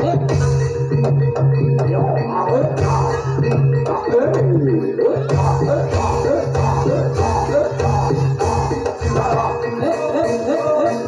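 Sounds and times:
gamelan music: 0:00.0 - 0:11.0.

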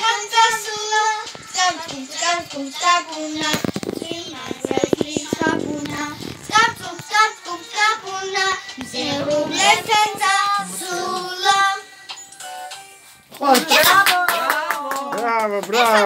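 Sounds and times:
girls singing: 0:00.0 - 0:12.1.

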